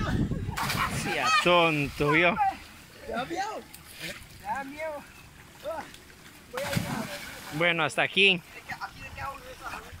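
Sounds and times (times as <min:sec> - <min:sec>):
splash into water: 0:00.6 - 0:02.0, 0:06.5 - 0:07.6.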